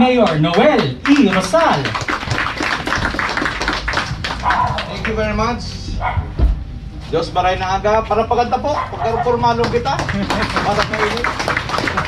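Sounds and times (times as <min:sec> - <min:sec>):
audience applauding: 0:00.0 - 0:05.3, 0:09.6 - 0:12.0.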